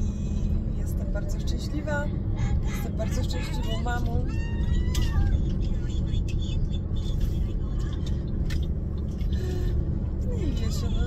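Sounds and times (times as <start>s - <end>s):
car engine and tyre rumble: 0.0s - 11.0s.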